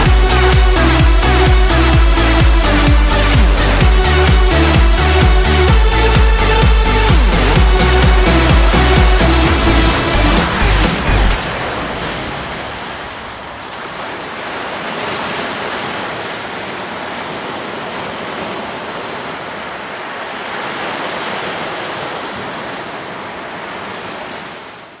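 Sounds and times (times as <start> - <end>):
ocean surf breaking on beach: 7.2 - 25.0.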